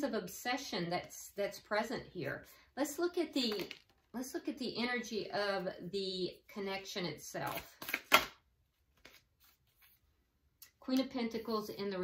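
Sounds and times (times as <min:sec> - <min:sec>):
cards shuffled by hand: 0:07.4 - 0:10.0.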